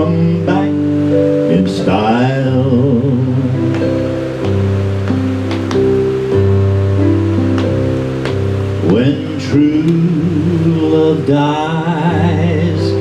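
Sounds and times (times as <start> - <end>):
electronic keyboard chords: 0.0 - 13.0
fan hiss: 0.0 - 13.0.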